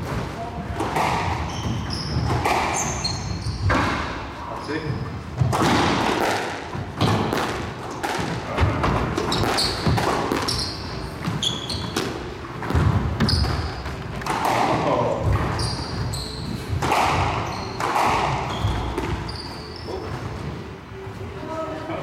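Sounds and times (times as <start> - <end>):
squash ball hitting racquets: 0.0 - 4.3, 5.3 - 20.4
shoes squeaking on wooden floor: 0.0 - 5.5, 6.7 - 20.9
ball smacking court walls: 5.4 - 15.7.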